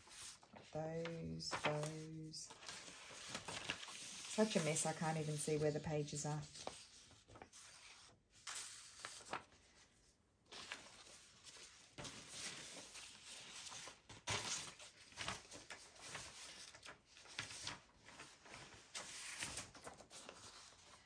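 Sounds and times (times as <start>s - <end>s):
paper sheets rustling: 0.0s - 21.0s.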